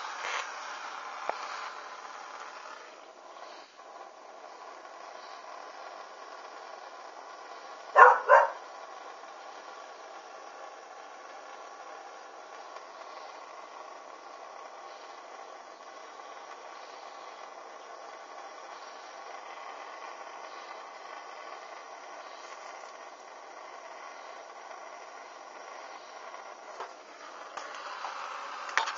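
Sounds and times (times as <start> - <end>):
torch lighter flame hissing: 0.0 - 28.9.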